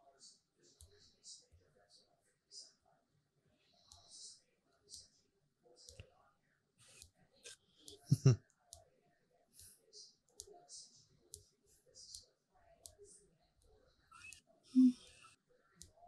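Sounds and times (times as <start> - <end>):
low voice-like sound: 8.1 - 8.4, 14.7 - 15.1.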